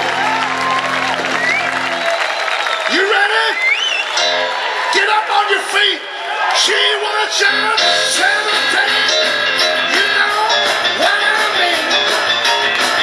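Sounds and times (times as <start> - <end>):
rock and roll band playing: 4.1 - 5.8, 6.5 - 13.0
man singing: 6.6 - 13.0.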